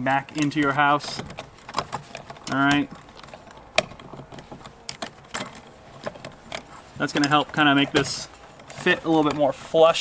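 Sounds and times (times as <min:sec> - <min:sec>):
wires clicking and rattling: 0:00.0 - 0:10.0.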